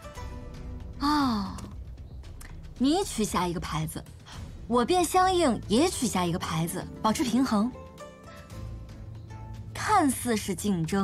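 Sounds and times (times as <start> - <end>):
woman speaking: 1.0 - 1.8, 2.5 - 7.8, 9.7 - 11.0.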